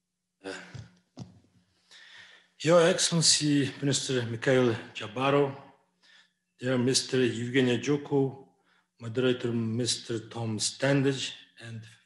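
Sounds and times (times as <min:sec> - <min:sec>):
man breathing: 0:01.6 - 0:02.6, 0:05.9 - 0:06.5.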